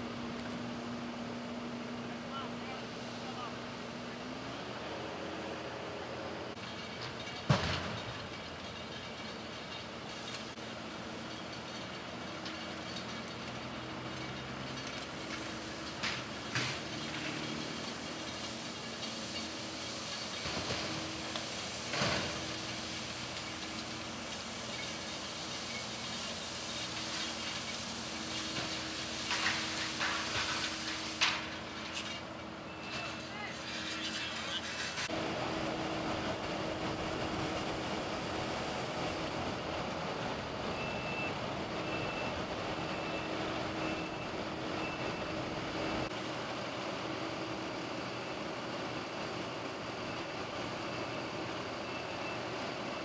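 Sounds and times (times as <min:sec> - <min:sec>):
vehicle engine humming: 0:00.0 - 0:52.9
road noise: 0:00.0 - 0:53.0
knocks and clanks of wreckage: 0:06.6 - 0:35.2.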